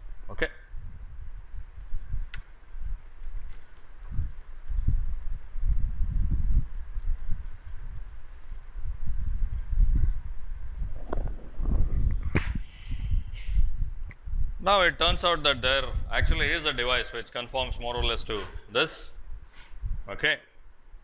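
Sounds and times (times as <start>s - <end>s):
low uneven rumbling: 9.0s - 20.0s.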